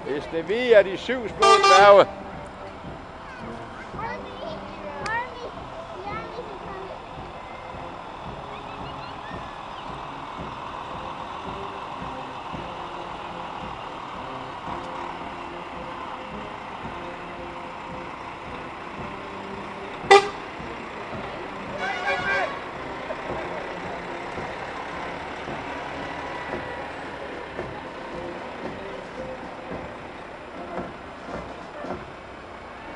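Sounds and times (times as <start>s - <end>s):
heavy lorry engines running: 0.0s - 32.9s
long broken horn blast: 1.2s - 2.3s, 10.0s - 26.6s
short sharp horn toot: 1.4s - 2.0s, 20.1s - 20.4s, 21.8s - 22.6s.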